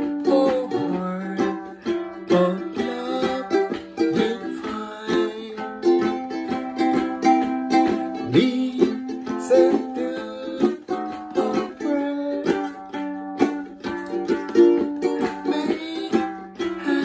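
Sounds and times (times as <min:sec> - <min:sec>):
ukulele strumming chords: 0:00.0 - 0:17.0.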